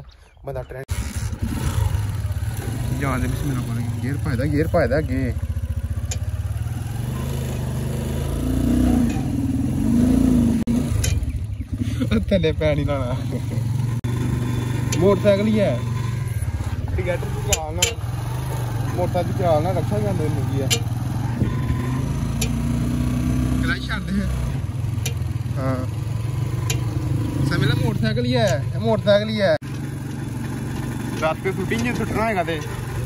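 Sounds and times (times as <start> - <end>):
motorcycle engine revving: 0.9 - 33.0.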